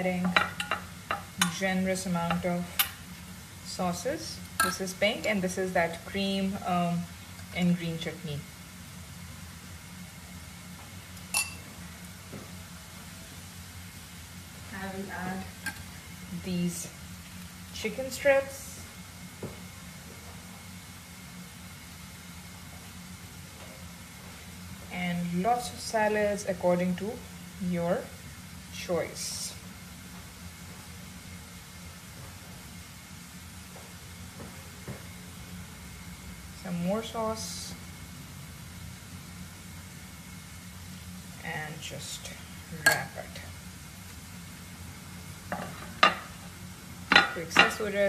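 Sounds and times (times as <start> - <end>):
steady low hum: 0.0 - 48.0
metal spoon clinking ceramic dish: 11.4 - 11.6.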